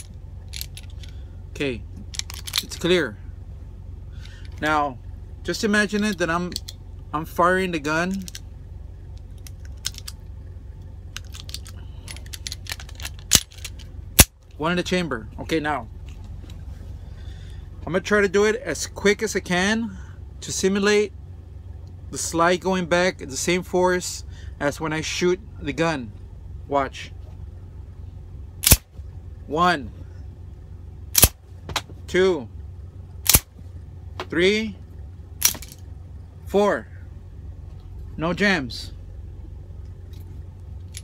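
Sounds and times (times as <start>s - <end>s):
metallic clicks of magazine loading: 0.5s - 1.2s, 2.1s - 2.8s, 8.1s - 8.5s, 9.3s - 10.2s, 11.1s - 14.3s.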